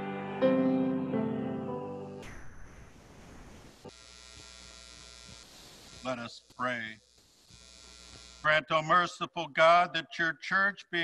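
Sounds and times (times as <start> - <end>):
electrical buzz and hiss: 2.2 - 8.6.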